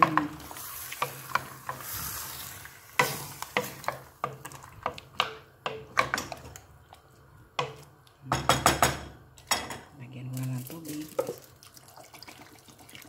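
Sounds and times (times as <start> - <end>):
meat sizzling: 0.0 - 4.8
wooden spoon stirring in a pot: 0.0 - 8.3
spoon knocking against pot: 7.6 - 9.8.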